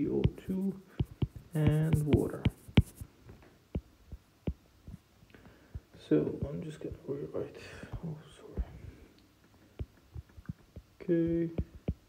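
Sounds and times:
stylus tapping tablet screen: 0.0 - 3.1, 3.7 - 12.0.

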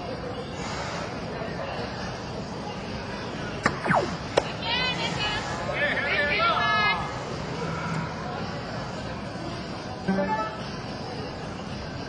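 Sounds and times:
murmur of large hall: 0.0 - 12.0
electronic horn-like tone: 10.1 - 10.8.

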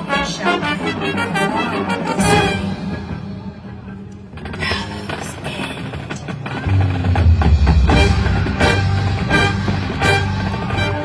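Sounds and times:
marching band playing: 0.0 - 4.0, 5.1 - 11.0
sharp percussion hits: 5.4 - 11.0.

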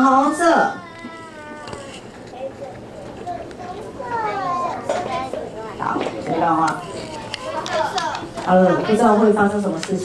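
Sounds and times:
child calling out: 0.0 - 2.5, 3.3 - 4.8
faint children's voices: 0.0 - 9.4.

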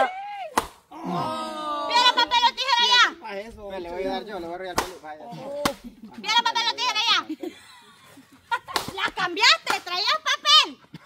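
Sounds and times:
excited voices: 0.0 - 3.4, 8.6 - 10.8
rubber sandal slaps: 0.5 - 0.8, 8.7 - 9.9.

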